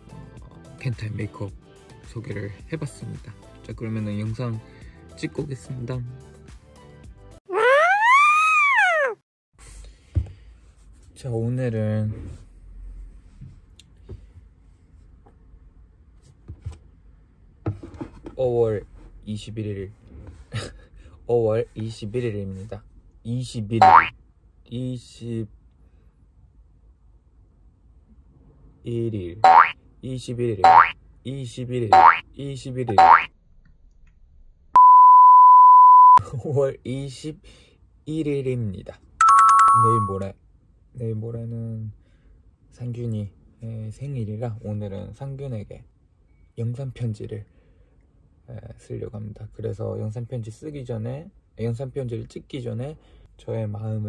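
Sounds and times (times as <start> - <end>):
rising boing sound effect: 23.8 - 24.1, 29.4 - 29.7, 30.6 - 30.9, 32.0 - 32.2, 32.9 - 33.3
loud steady beep: 34.8 - 36.2, 39.2 - 40.2.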